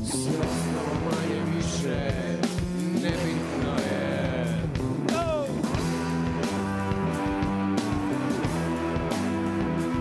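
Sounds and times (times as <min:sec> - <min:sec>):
guitar: 0:00.0 - 0:10.0
live rock band playing: 0:00.0 - 0:10.0.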